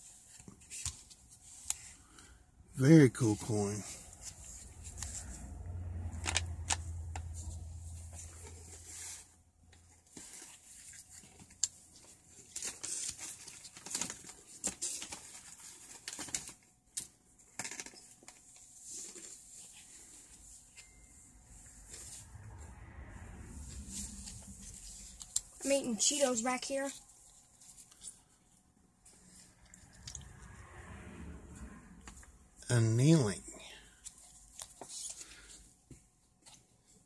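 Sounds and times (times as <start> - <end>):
low rumble: 3.9 - 8.8, 21.1 - 25.6, 29.8 - 32.6
cardboard rustling and clicking: 10.1 - 19.7.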